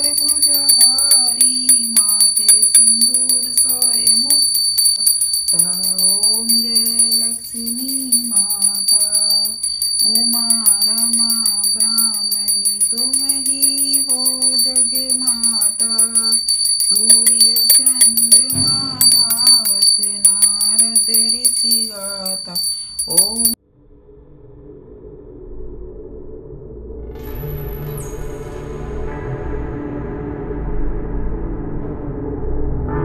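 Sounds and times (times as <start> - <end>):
hand bell ringing rapidly: 0.0 - 23.6
person singing slow melody: 0.0 - 23.6.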